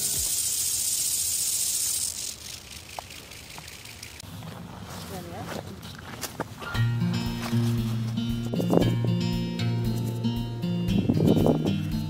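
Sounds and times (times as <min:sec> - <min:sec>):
faint ticks: 0:00.0 - 0:04.2
insects buzzing: 0:00.0 - 0:04.7.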